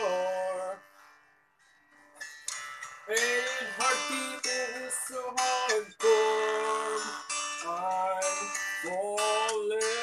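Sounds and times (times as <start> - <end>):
soft guitar strums: 0.0 - 10.0.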